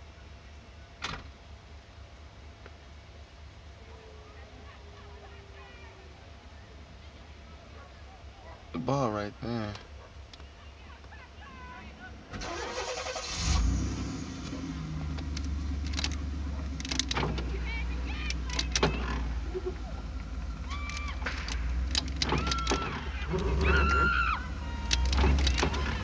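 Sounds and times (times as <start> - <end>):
car engine cranking and idling: 12.1 - 26.0.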